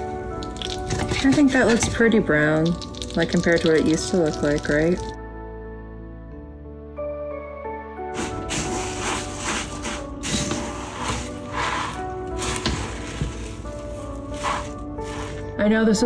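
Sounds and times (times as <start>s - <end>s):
background music: 0.0s - 16.0s
spatula stirring cereal in a bowl: 8.2s - 15.5s.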